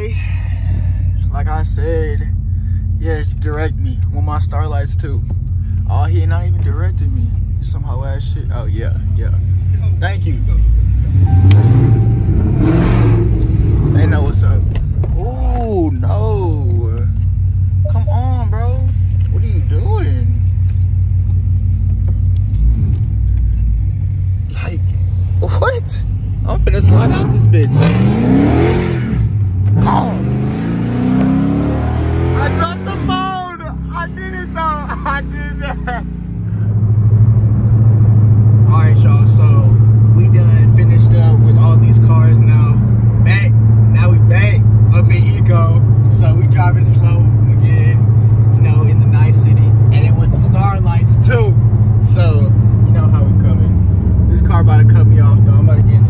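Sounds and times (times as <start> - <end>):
car engine revving: 0.0 - 56.0
low engine drone while cruising: 0.0 - 56.0.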